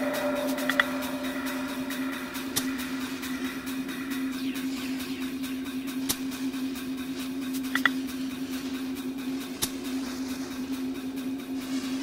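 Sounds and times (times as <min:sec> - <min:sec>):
low ambient drone: 0:00.0 - 0:12.0.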